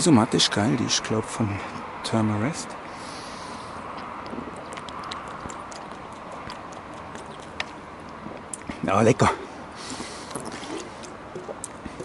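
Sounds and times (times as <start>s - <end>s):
person swallowing water: 3.9s - 8.7s, 10.2s - 12.0s.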